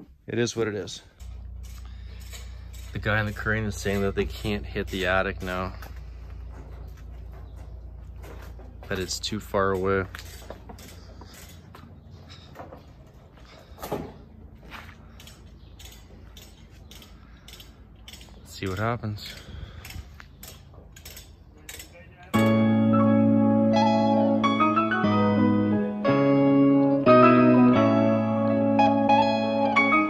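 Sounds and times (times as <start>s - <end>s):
steady low hum: 0.1s - 18.5s
light clinks: 1.1s - 8.3s, 15.1s - 22.3s.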